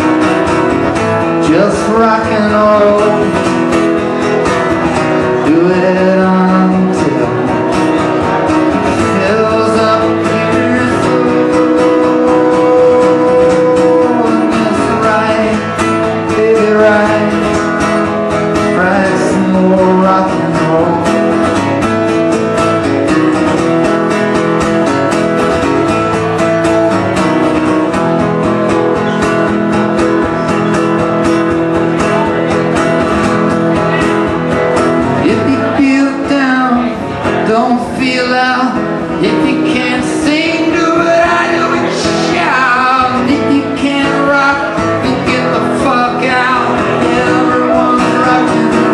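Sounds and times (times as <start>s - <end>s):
acoustic guitar strumming: 0.0s - 48.9s.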